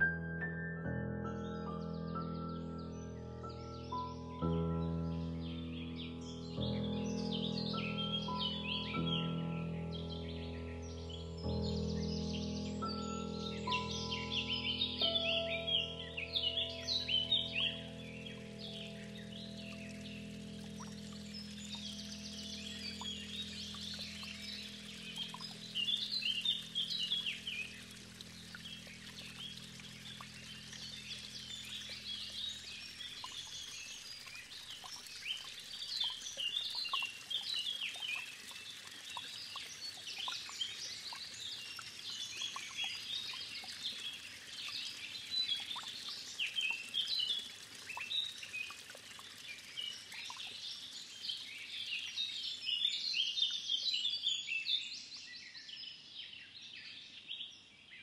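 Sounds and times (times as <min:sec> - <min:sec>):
low held music chord: 0:00.0 - 0:34.2
birds chirping and singing: 0:05.6 - 0:48.8.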